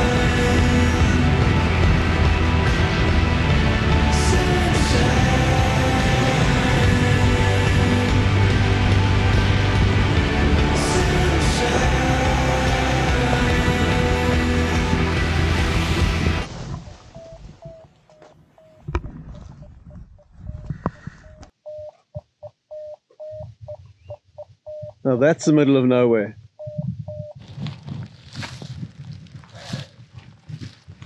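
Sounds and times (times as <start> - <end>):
background music: 0.0 - 16.5
electronic device beeping: 20.5 - 25.0, 26.6 - 27.4.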